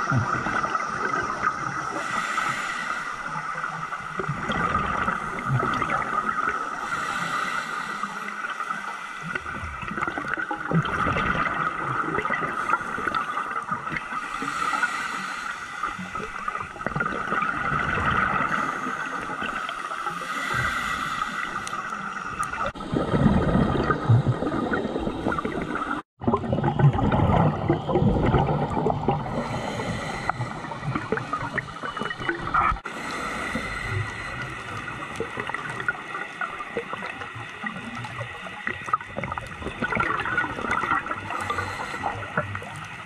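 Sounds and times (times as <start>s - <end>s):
diver's bubbles gurgling underwater: 0.0s - 2.2s, 3.3s - 6.9s, 9.3s - 15.0s, 16.0s - 19.8s, 21.6s - 32.9s, 33.6s - 43.0s.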